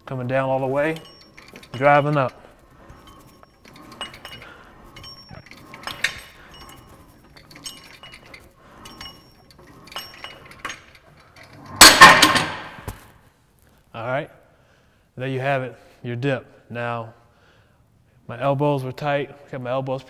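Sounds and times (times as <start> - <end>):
metal dip station clinking: 0.4 - 12.7.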